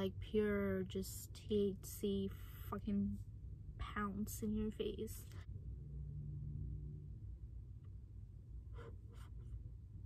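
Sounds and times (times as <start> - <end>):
faint hum: 0.0 - 10.0
low steady rumble: 0.0 - 10.0.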